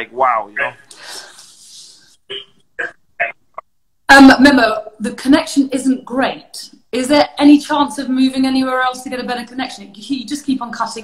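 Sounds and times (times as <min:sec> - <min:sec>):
man's voice breaking up: 0:00.0 - 0:00.9.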